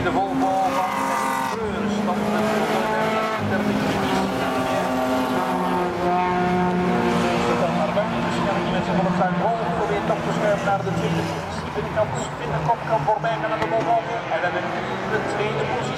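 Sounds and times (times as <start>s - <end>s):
rally car engines racing: 0.0s - 15.9s.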